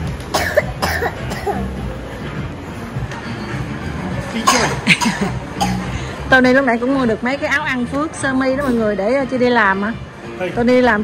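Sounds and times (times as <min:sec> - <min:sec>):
faint background music: 0:00.0 - 0:11.0
person coughing: 0:00.3 - 0:01.8, 0:04.4 - 0:05.9.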